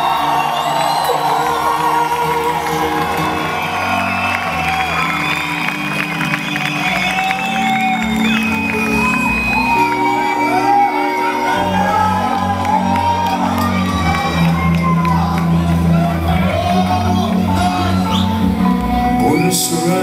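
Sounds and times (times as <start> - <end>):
crowd whooping and cheering: 0.0 - 20.0.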